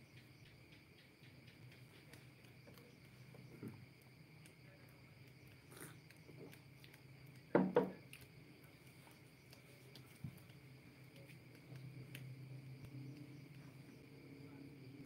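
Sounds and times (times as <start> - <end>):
crickets trilling: 0.0 - 15.0
small knocks and rustles: 1.7 - 4.1, 6.3 - 12.3.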